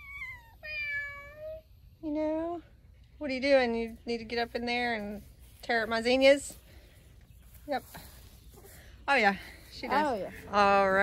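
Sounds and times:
cat meowing: 0.0s - 1.6s.

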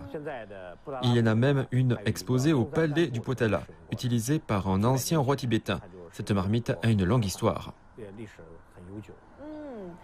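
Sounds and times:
woman saying drawn-out ohh: 9.4s - 10.0s.

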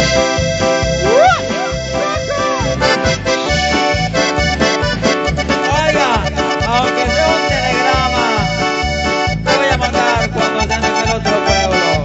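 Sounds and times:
accordion melody: 0.0s - 12.0s
pounding bass beat: 0.0s - 12.0s.

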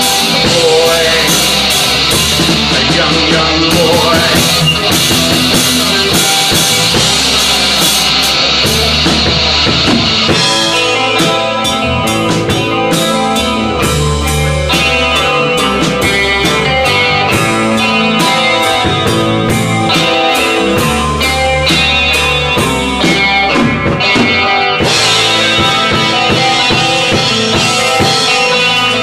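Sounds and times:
drum kit: 0.0s - 29.0s
electric guitar: 0.0s - 29.0s.

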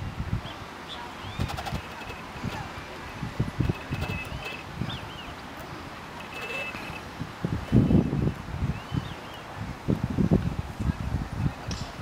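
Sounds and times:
bird chirps: 0.4s - 7.0s
sharp clicks: 1.4s - 2.6s, 3.6s - 4.7s.

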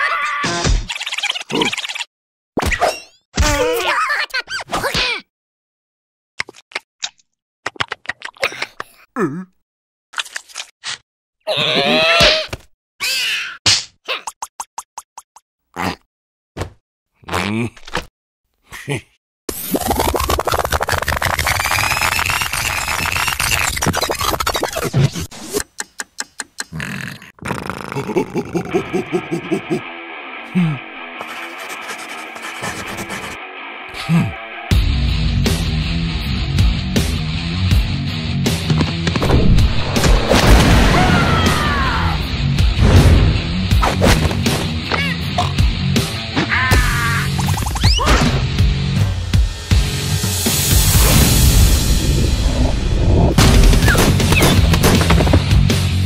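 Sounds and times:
cartoon deep boom: 39.2s - 43.5s, 50.8s - 54.6s
cartoon longer burst: 40.2s - 42.2s.

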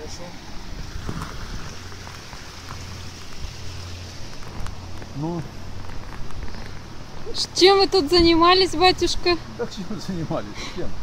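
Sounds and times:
floodwater rushing through spillway: 0.0s - 11.0s.

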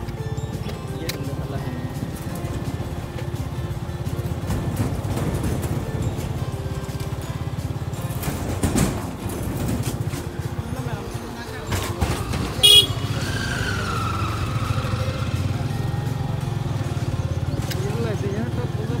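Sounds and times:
small engine running: 0.0s - 19.0s
short high horn beep: 12.6s - 13.2s.

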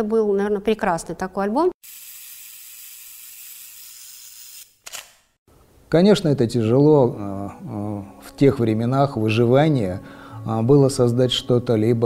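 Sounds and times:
sharp click: 4.8s - 5.3s.

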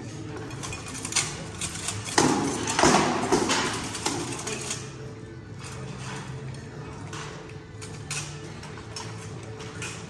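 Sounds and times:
armour clatter: 0.4s - 10.0s
swords clashing on armour: 0.7s - 4.9s.

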